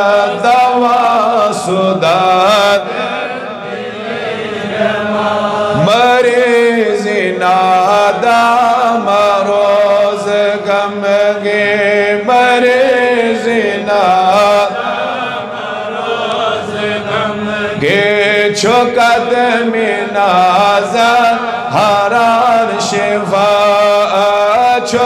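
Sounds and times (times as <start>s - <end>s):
man chanting into a microphone: 0.0s - 3.7s, 4.4s - 15.2s, 16.6s - 25.0s.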